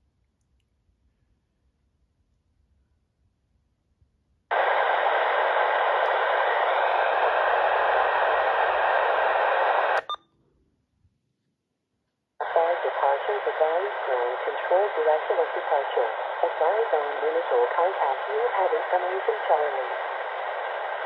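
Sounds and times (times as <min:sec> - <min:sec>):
scanner static hiss: 0:04.5 - 0:10.2, 0:12.4 - 0:21.0
radio voice through speaker: 0:12.4 - 0:21.0.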